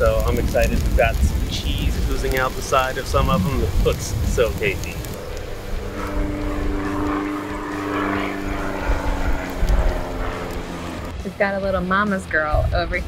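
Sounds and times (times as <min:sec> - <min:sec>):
steady engine drone: 0:00.0 - 0:13.0.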